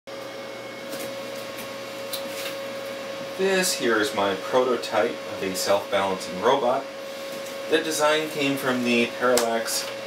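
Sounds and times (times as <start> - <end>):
room hiss and hum: 0.1 - 10.0.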